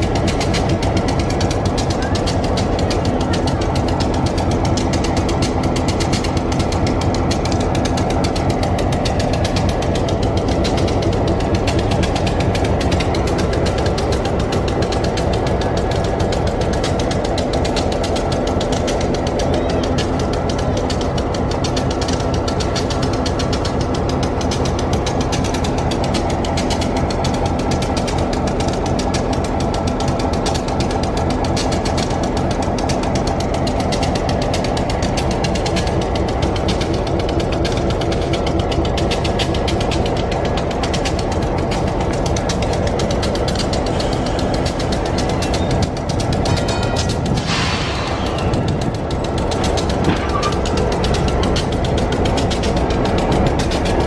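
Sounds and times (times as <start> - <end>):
machine running with rapid pulse: 0.0 - 54.0.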